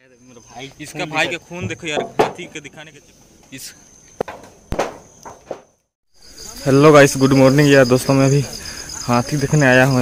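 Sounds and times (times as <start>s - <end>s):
high-pitched insect buzz: 6.1s - 10.0s.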